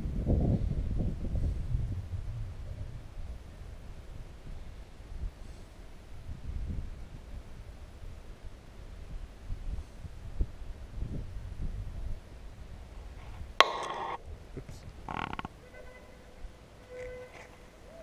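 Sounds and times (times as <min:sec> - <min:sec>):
wind rumble on microphone: 0:00.0 - 0:15.6.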